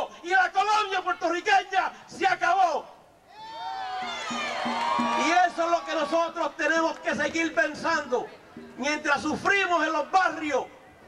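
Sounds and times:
crowd cheering and shouting: 0:03.3 - 0:06.9.

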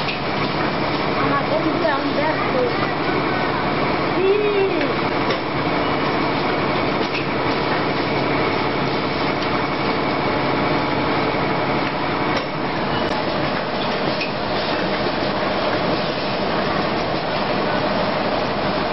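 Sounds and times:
packing machine running: 0:00.0 - 0:18.9.

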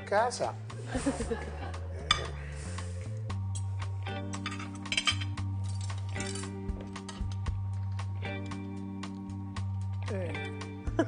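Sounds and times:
background music with low notes: 0:00.0 - 0:11.0
fork clinking on plate: 0:04.4 - 0:06.5.

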